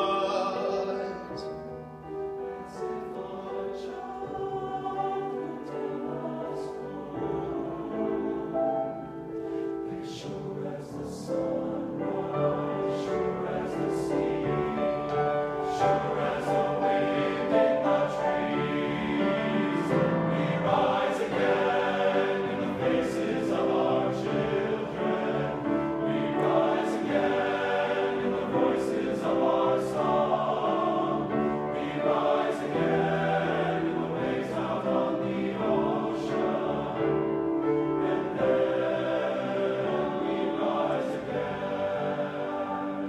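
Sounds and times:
men's choir singing chords: 0.0 - 43.0.

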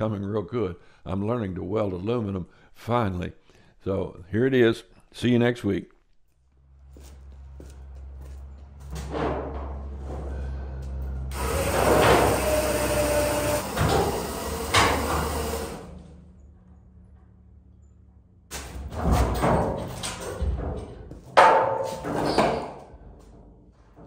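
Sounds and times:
metal scraping and creaking: 6.7 - 12.4.

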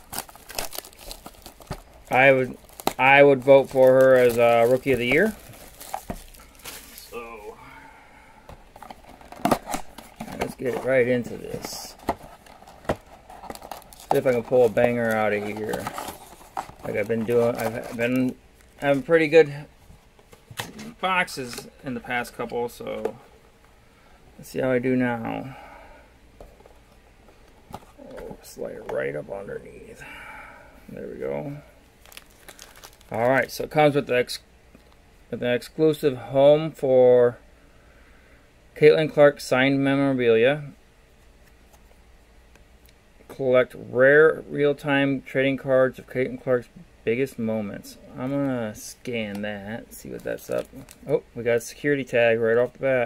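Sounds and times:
cardboard rustling: 0.0 - 7.2, 8.7 - 19.2
plastic shrink-wrap crinkling: 0.0 - 7.2, 8.9 - 19.2, 32.0 - 33.5.

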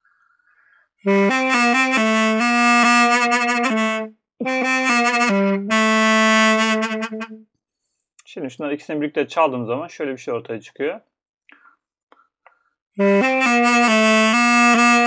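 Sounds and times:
double-reed pipe playing folk melody: 1.0 - 7.4, 13.0 - 15.0.

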